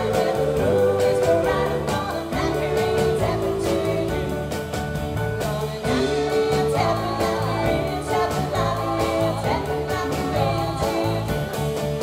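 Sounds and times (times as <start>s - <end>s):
women singing together: 0.0s - 4.6s, 5.4s - 11.7s
drums keeping steady beat: 0.0s - 12.0s
electric bass guitar: 0.0s - 12.0s.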